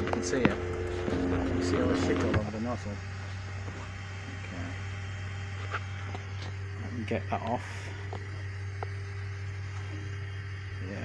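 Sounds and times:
person speaking: 0:00.0 - 0:03.1
printer fans humming: 0:00.0 - 0:11.0.

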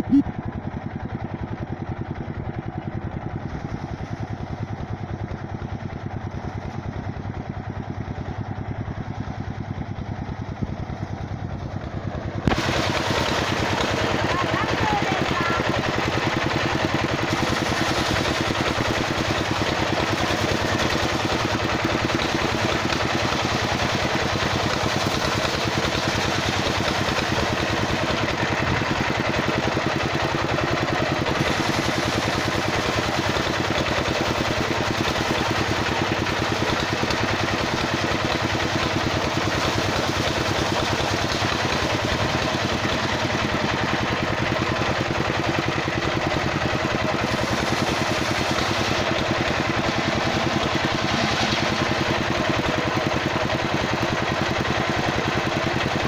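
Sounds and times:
engine running steadily: 0:00.0 - 0:56.0
circular saw cutting wood: 0:12.4 - 0:54.8.

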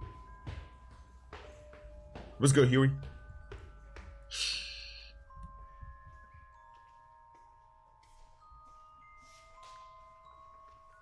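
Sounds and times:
soft bell-like film music: 0:00.0 - 0:11.0.

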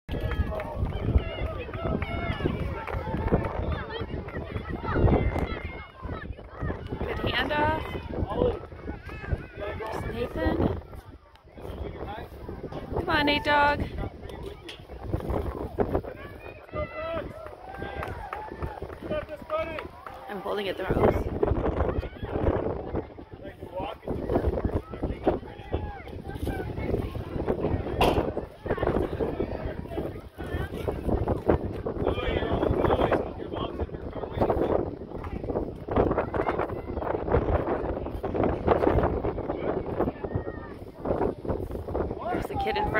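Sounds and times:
spectators chattering: 0:00.1 - 0:42.9
spectators shouting: 0:15.6 - 0:20.9.

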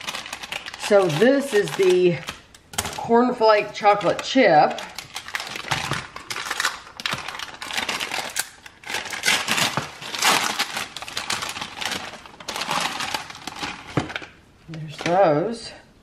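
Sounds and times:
plastic packaging crinkling: 0:00.0 - 0:15.3.

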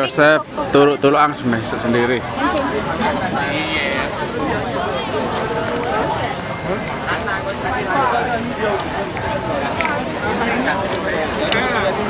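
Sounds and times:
background voices chattering: 0:00.0 - 0:12.0
people talking close by: 0:00.0 - 0:12.0.

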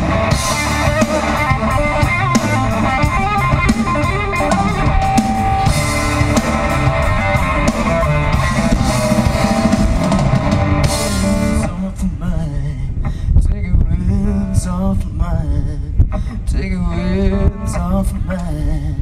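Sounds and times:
drum kit: 0:00.0 - 0:11.8
electric guitars: 0:00.0 - 0:12.3.

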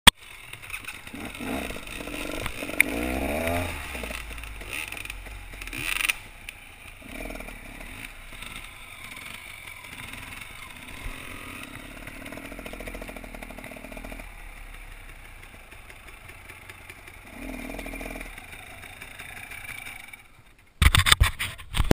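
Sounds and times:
dirt bike engines revving: 0:00.2 - 0:20.7
loud clatter: 0:20.8 - 0:21.9.

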